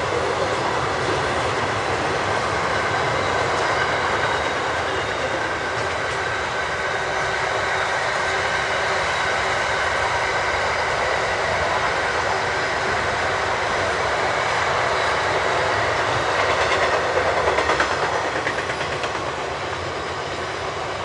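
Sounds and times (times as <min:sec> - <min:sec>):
wheels clickety-clack: 0:00.0 - 0:06.9, 0:12.9 - 0:21.0
train wheels rumbling and rattling: 0:00.0 - 0:21.0.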